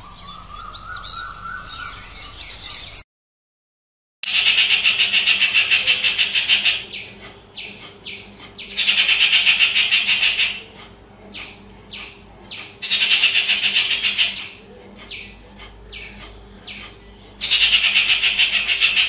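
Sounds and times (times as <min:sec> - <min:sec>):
bird downward-slurred notes: 0:00.0 - 0:03.0
birds rattling chatter: 0:00.0 - 0:03.0, 0:04.2 - 0:19.0.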